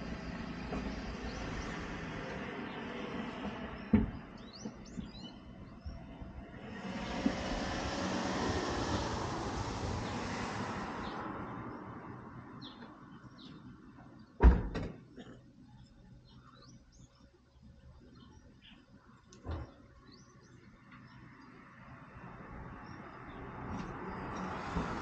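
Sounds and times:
small birds chirping: 0.0 - 6.4, 11.0 - 14.4, 15.0 - 25.0
vehicle passing: 6.0 - 13.2, 21.6 - 25.0.

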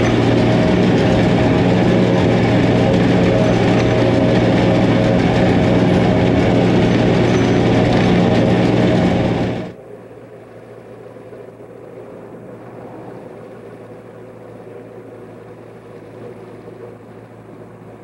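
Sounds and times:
tractor and forage harvester droning: 0.0 - 18.0.

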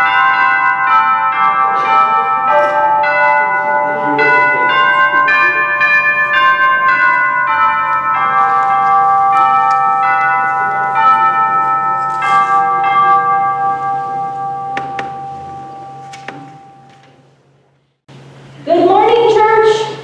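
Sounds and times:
slow bell-like notes ringing: 0.0 - 17.2.

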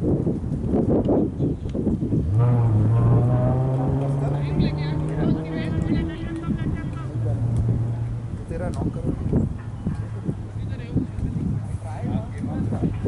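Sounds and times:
engine running steadily: 2.1 - 13.0.

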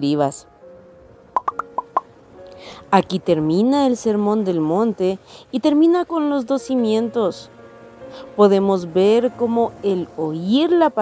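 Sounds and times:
faint steady background tone: 0.0 - 11.0.

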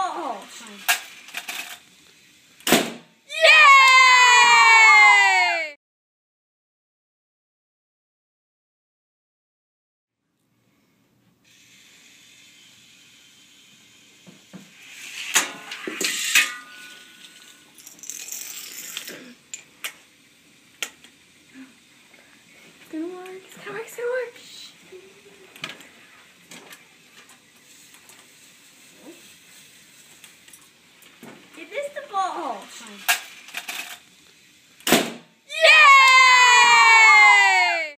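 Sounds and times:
toy parts clattering and rattling: 0.4 - 2.0, 14.8 - 20.0, 31.8 - 34.3
child shrieking: 3.3 - 5.8.

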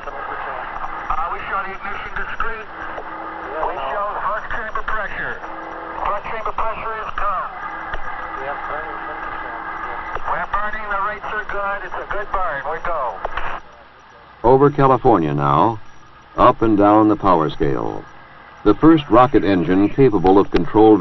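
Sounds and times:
overlapping voices over radio: 0.0 - 21.0
short steady tones: 0.8 - 20.2.

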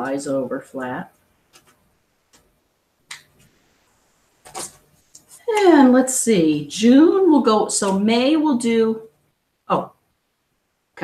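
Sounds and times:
paper rustling and tearing: 4.4 - 4.8.

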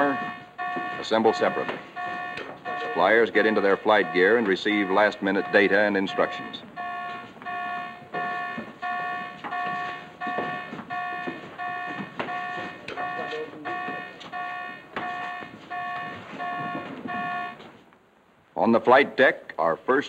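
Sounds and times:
electric alarm buzzer beeping: 0.0 - 17.6.

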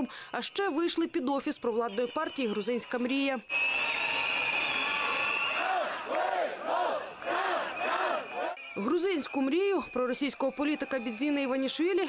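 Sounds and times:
crowd noise: 0.4 - 12.0
crowd chanting in unison: 5.5 - 8.6.

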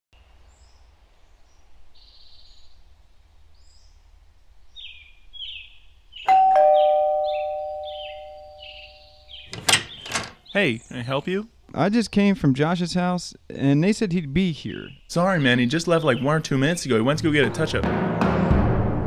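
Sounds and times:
birds chirping: 4.7 - 12.6, 14.5 - 17.6
two-note doorbell chime: 6.3 - 9.3.

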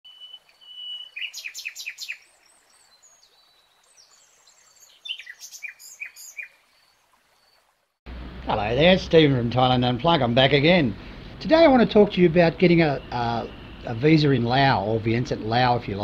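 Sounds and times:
birds chirping and whistling: 0.1 - 3.4, 4.0 - 6.6.

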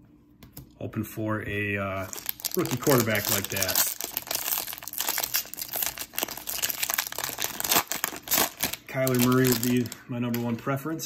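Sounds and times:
foil wrapper tearing and crinkling: 2.0 - 10.6.

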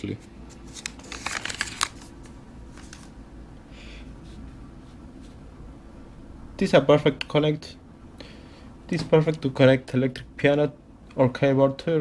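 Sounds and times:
paper rustling and crackling: 0.5 - 3.2.

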